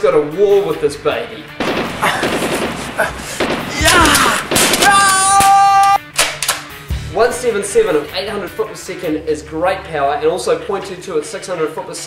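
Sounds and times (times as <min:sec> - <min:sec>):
rapid gunfire: 0:01.6 - 0:05.6
man shouting: 0:03.0 - 0:06.0.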